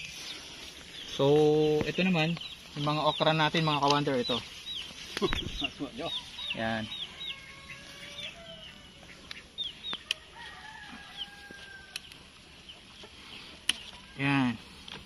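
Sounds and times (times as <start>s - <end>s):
chickens peeping: 0.0s - 15.0s
sharp clicks: 3.8s - 4.1s
distant rooster crowing: 6.0s - 12.4s.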